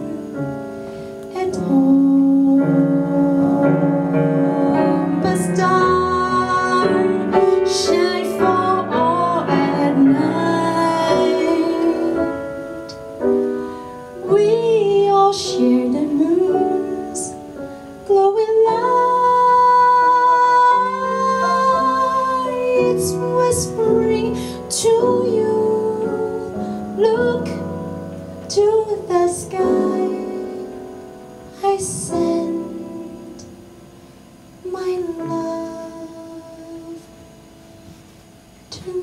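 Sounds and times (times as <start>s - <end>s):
woman singing jazz ballad: 0.0s - 38.0s, 38.6s - 39.0s
piano chords: 0.0s - 39.0s.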